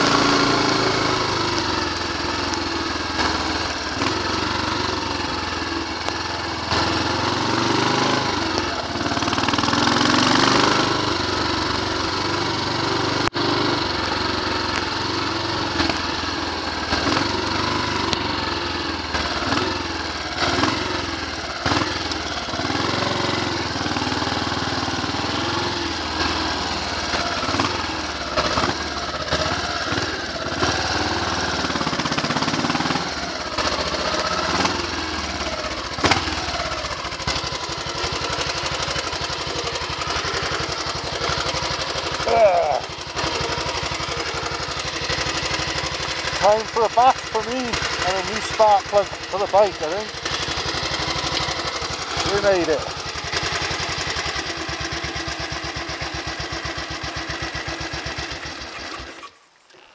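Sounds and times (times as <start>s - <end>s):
motorcycle engine running: 0.0s - 59.9s.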